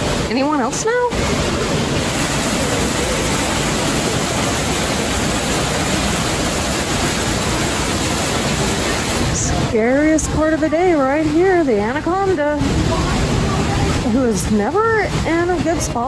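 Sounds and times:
waterfall splashing into pool: 0:00.0 - 0:16.0.

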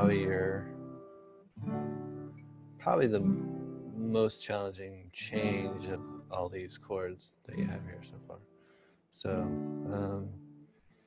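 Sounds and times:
acoustic guitar strummed: 0:00.0 - 0:04.3, 0:05.2 - 0:06.8, 0:07.5 - 0:10.8.

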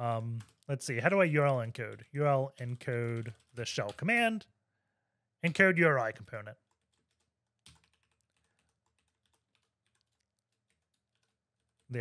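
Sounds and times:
faint computer keyboard typing: 0:00.0 - 0:04.2, 0:06.1 - 0:12.0.

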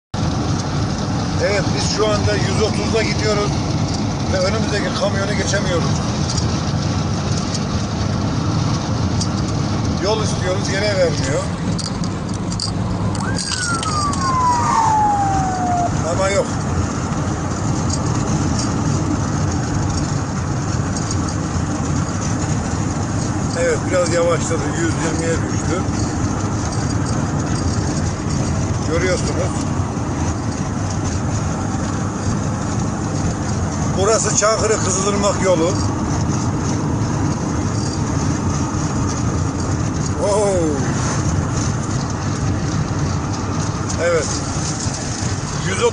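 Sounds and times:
road and engine noise in cab: 0:00.1 - 0:45.9
wind noise: 0:11.5 - 0:34.0
ambulance siren wailing: 0:13.0 - 0:17.0.

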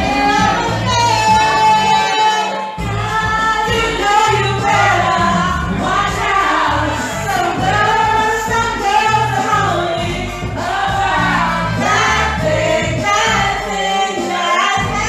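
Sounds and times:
backing track bass notes: 0:00.0 - 0:13.8, 0:14.8 - 0:15.0
person singing karaoke: 0:00.0 - 0:15.0.

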